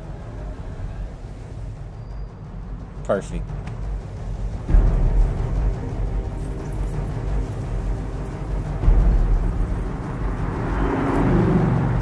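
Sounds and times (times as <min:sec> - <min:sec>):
dark film score drone: 0:00.0 - 0:12.0.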